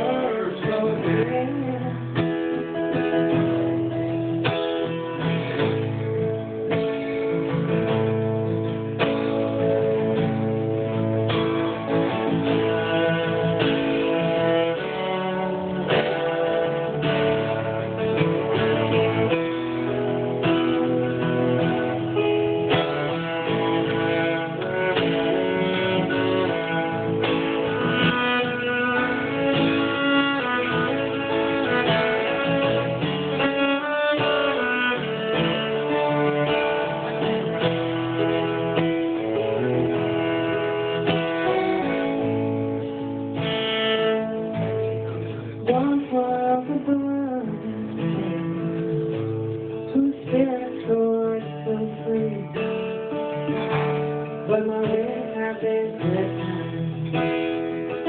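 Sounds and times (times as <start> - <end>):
bowed cello: 0.0 - 52.3
acoustic guitar: 0.0 - 58.0.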